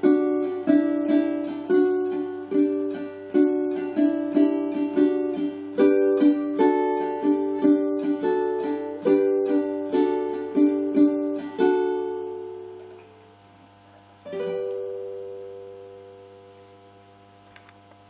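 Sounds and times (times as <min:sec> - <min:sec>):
ukulele fingerstyle melody: 0:00.0 - 0:13.1, 0:14.2 - 0:16.7.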